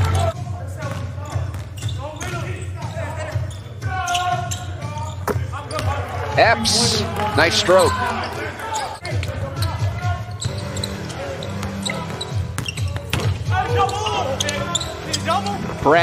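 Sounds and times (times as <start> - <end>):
players calling out: 1.8 - 16.0
arena background: 6.3 - 9.0.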